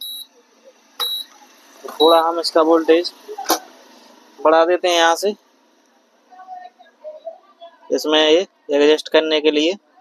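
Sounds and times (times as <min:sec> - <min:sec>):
cooktop buzzer beeping: 0:00.0 - 0:00.3, 0:01.0 - 0:01.3.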